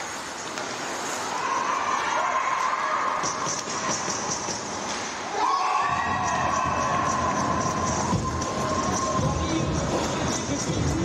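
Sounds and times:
crowd cheering and shouting: 1.3s - 4.5s, 5.2s - 11.0s.

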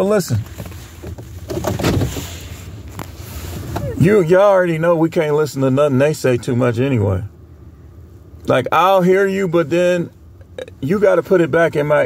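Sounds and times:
low rumble inside a car: 0.0s - 12.0s
rustling and handling noise: 0.1s - 4.0s.

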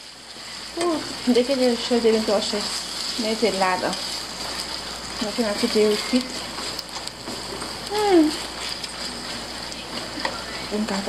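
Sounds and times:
meat sizzling in a frying pan: 0.0s - 11.0s.

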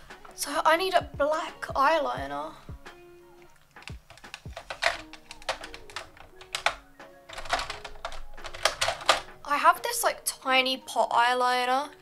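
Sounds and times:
plastic containers clicking: 3.6s - 9.4s.

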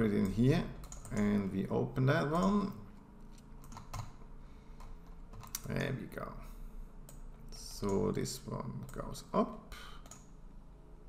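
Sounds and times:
low steady hum: 0.0s - 11.0s
keyboard and mouse clicks: 0.2s - 1.3s, 3.3s - 4.2s, 4.8s - 5.7s, 10.0s - 10.4s.

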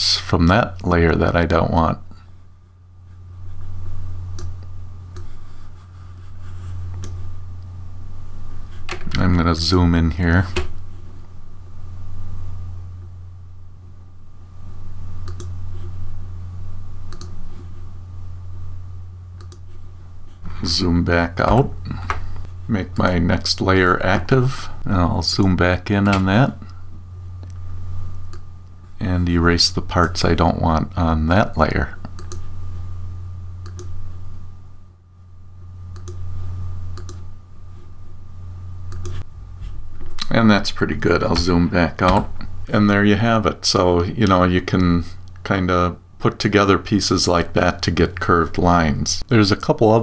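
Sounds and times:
steady low hum: 0.0s - 50.0s
computer mouse clicks: 4.4s - 5.3s, 7.0s - 7.2s, 15.2s - 15.6s, 17.1s - 17.4s, 19.4s - 19.6s, 32.1s - 32.4s, 33.6s - 34.0s, 36.0s - 36.2s, 36.9s - 37.2s, 38.9s - 39.2s.

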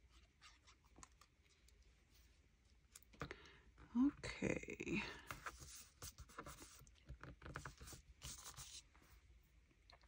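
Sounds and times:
paper scratching and rubbing: 5.4s - 8.8s.

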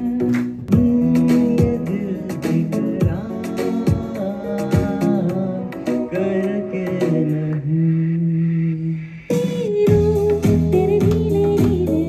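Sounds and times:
man singing into microphone: 0.0s - 11.0s
backing music with bass line: 0.0s - 12.0s.

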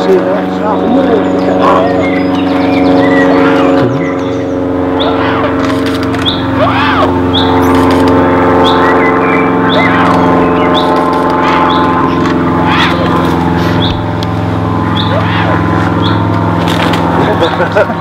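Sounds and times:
steady motor drone: 0.0s - 18.0s
short rising-and-falling calls: 0.9s - 14.2s, 14.8s - 17.1s.

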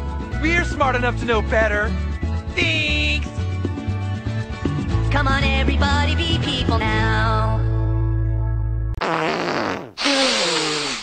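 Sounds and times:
long fart sounds: 9.0s - 11.0s.

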